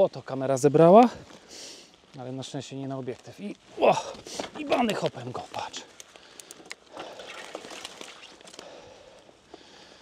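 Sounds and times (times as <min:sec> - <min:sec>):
tyres crackling over leaves: 0:00.0 - 0:10.0
bicycle clicks and rattles: 0:05.9 - 0:08.6.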